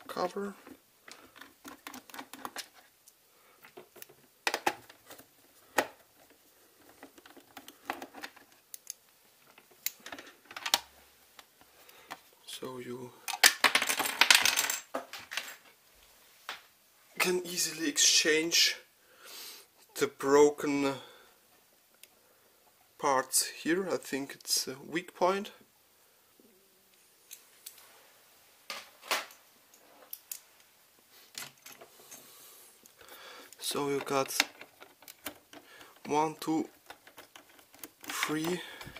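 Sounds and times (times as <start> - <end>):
plastic parts clicking and knocking: 0.6 - 12.3, 13.3 - 15.6, 33.5 - 38.9.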